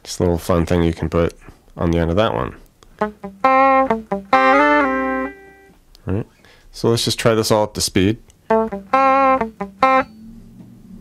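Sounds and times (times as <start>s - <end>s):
electric guitar playing: 2.9s - 5.8s, 8.4s - 11.0s.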